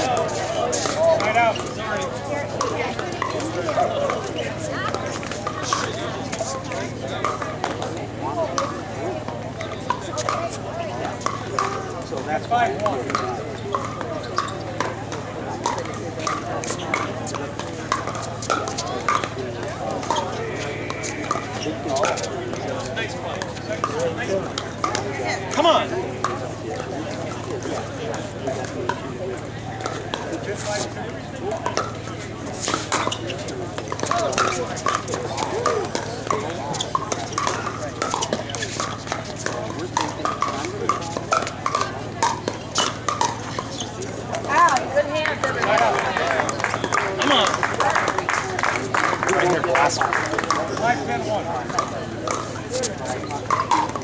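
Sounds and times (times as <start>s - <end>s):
chatter of players and spectators: 0.0s - 54.0s.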